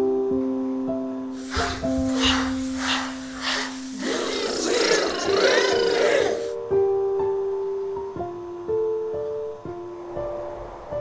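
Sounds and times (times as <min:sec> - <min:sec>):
children's voices overlapping: 0:01.4 - 0:06.6
rhythmic swishing strokes: 0:01.4 - 0:06.6.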